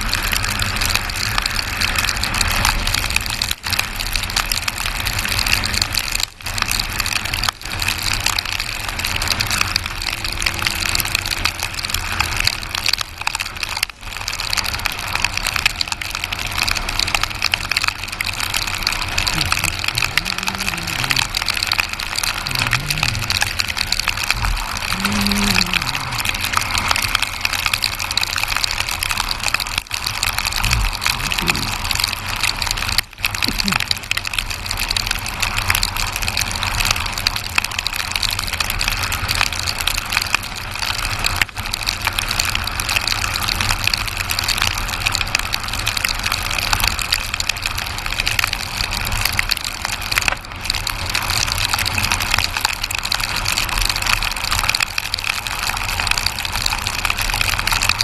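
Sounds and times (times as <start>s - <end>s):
road noise on wet road: 0.0s - 58.0s.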